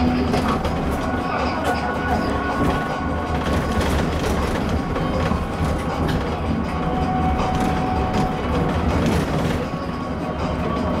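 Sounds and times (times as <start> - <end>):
interior fittings rattling: 0.0 - 10.0
road and tyre rumble: 0.0 - 11.0.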